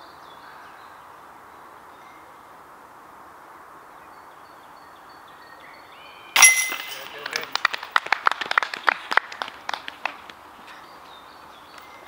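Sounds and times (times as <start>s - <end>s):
disc jangling metal chains: 6.4s - 7.2s.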